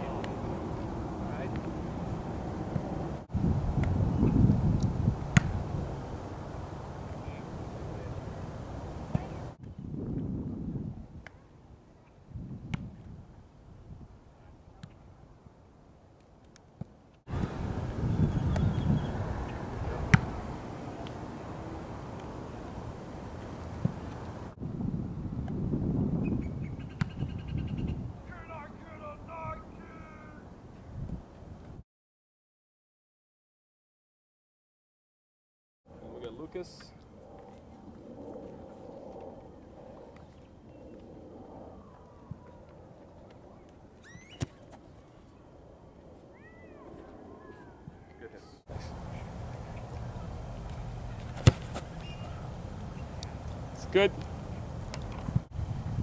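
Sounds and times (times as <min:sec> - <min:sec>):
wind buffeting microphone: 0:00.0 - 0:06.6, 0:07.4 - 0:11.3, 0:12.2 - 0:14.2, 0:17.3 - 0:21.8, 0:23.7 - 0:28.3, 0:53.3 - 0:56.0
outdoor background noise: 0:00.0 - 0:31.8, 0:35.9 - 0:56.0
foot kicking football: 0:05.3 - 0:05.6, 0:19.9 - 0:20.4, 0:44.2 - 0:44.8, 0:50.7 - 0:52.4
bird chirps: 0:18.2 - 0:19.6, 0:44.0 - 0:44.5, 0:52.0 - 0:52.4.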